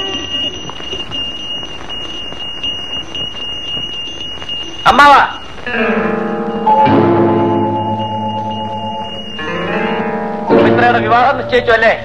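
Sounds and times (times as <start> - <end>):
film soundtrack hiss: 0.0 - 12.0.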